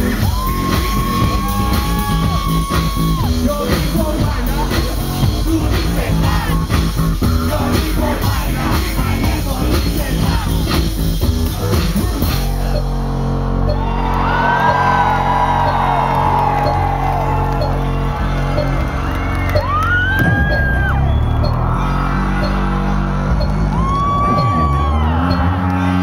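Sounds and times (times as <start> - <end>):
deep bass line: 0.0 - 26.0
electronic dance music: 0.0 - 26.0.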